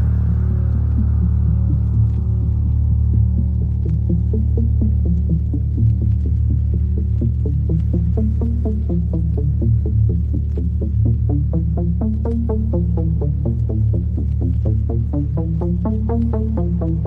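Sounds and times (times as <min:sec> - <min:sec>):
heavy bass drone: 0:00.0 - 0:17.0.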